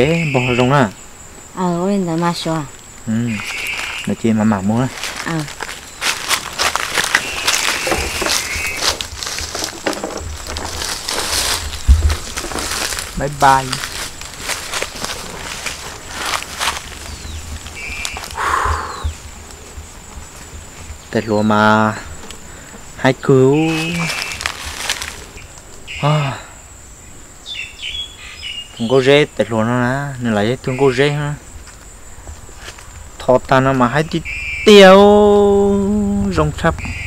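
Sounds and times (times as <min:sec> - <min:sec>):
high-pitched insect drone: 0:00.0 - 0:37.0
faint bird-like whistles: 0:03.2 - 0:04.1, 0:07.1 - 0:08.9, 0:17.1 - 0:19.2, 0:34.2 - 0:35.0, 0:36.8 - 0:37.0
steps on grass: 0:03.3 - 0:21.1, 0:23.5 - 0:25.7.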